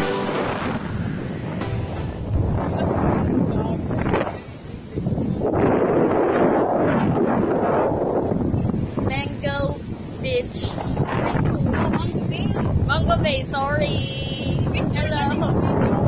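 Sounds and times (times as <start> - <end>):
waves breaking: 0.0 - 5.6
wind buffeting microphone: 0.0 - 16.0.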